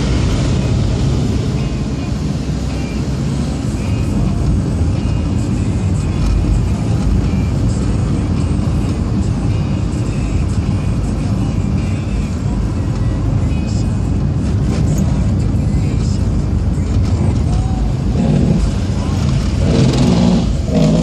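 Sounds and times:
car engine and tyres rumbling: 0.0s - 21.0s.

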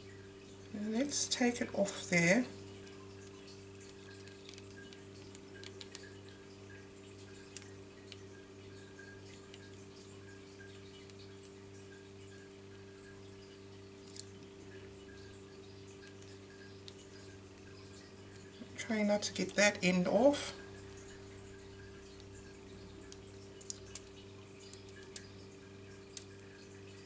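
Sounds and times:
paint dripping onto plastic sheet: 0.5s - 27.0s.

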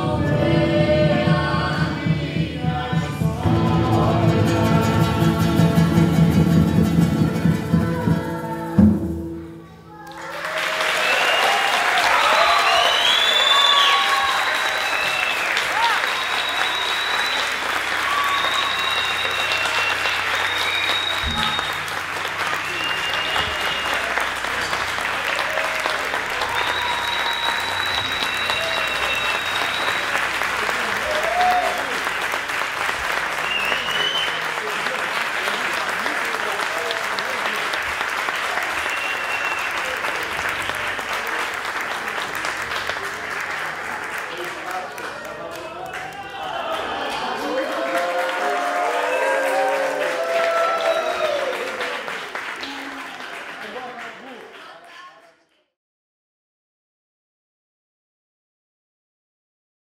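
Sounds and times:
high calls and whoops: 10.0s - 21.9s, 25.3s - 30.4s, 31.0s - 31.9s, 46.1s - 51.8s
audience applauding: 10.0s - 55.1s.

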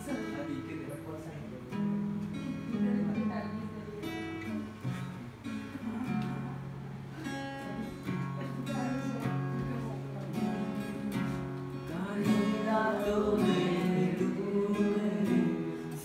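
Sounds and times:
acoustic guitar strumming: 0.0s - 16.0s.

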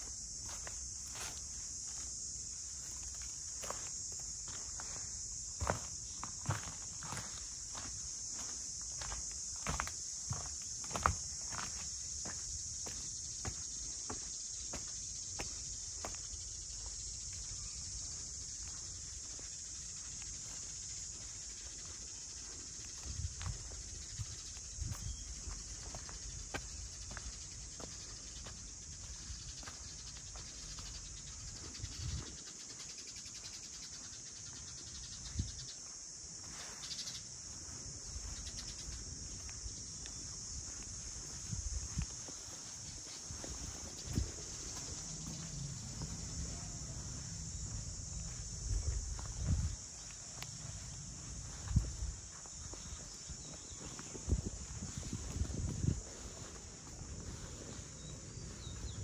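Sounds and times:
high-pitched insect drone: 0.0s - 59.0s
footsteps on stone paving: 3.0s - 31.0s, 39.1s - 59.0s.

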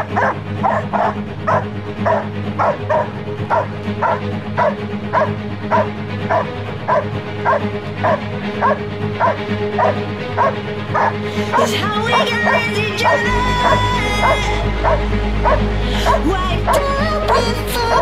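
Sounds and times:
dog barking: 0.0s - 16.2s
music with low tone: 0.0s - 18.0s.

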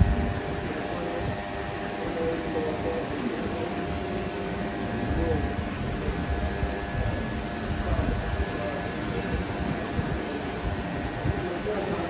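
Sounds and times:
electric hair trimmer buzzing: 0.0s - 12.0s.

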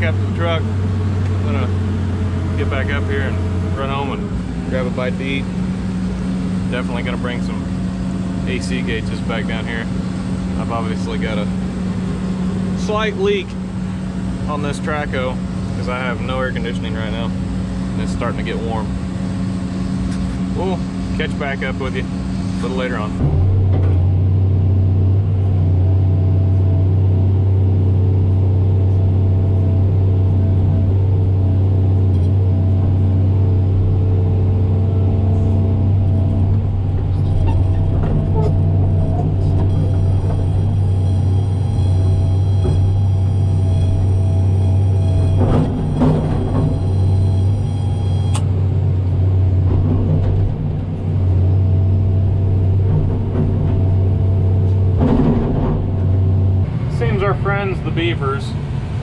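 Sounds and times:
excavator diesel engine drone: 0.0s - 59.0s
steady high-pitched tone: 35.3s - 48.5s.

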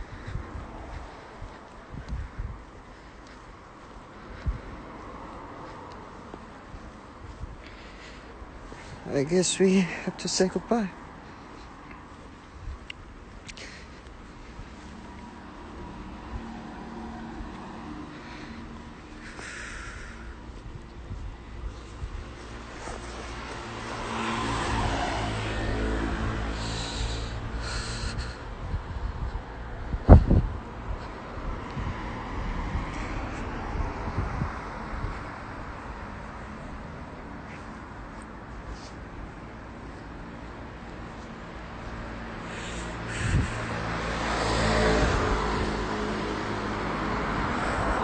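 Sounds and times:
vehicle passing by: 0.0s - 48.0s
car driving past: 15.0s - 20.2s, 22.6s - 28.3s, 42.2s - 48.0s.

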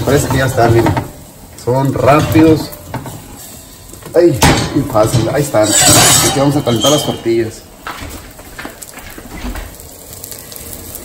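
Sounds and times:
omelette sizzling in skillet: 0.0s - 11.0s.

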